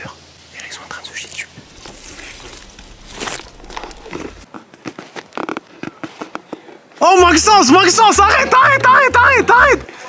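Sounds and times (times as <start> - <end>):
leaves and twigs rustling: 1.0 - 5.5.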